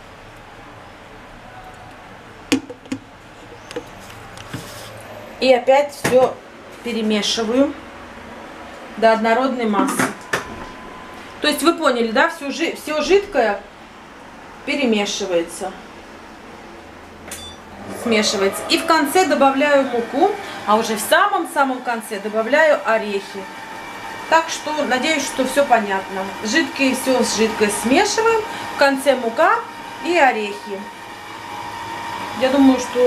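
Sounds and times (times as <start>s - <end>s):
short click with high ring: 17.3s - 17.6s.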